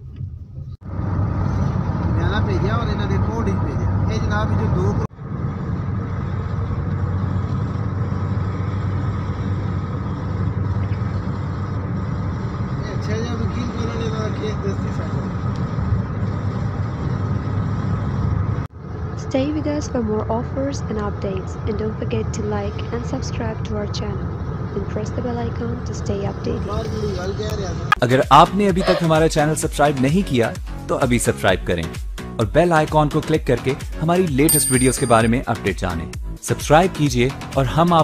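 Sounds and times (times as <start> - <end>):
road and engine rumble: 0.0 - 38.0.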